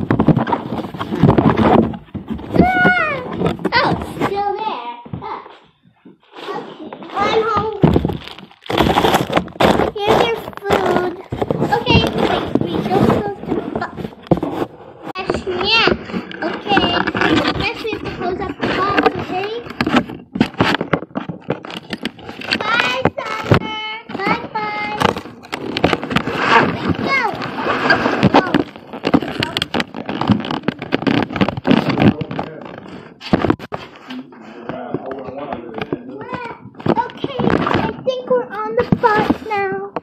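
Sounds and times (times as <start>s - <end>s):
children talking: 2.5s - 5.7s, 6.3s - 8.3s, 9.7s - 14.2s, 15.1s - 19.8s, 22.4s - 25.2s, 26.4s - 29.8s, 35.1s - 40.0s.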